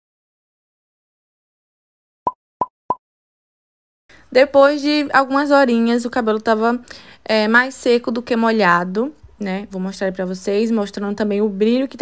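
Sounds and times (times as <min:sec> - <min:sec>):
pop sound effects: 0:02.3 - 0:03.0.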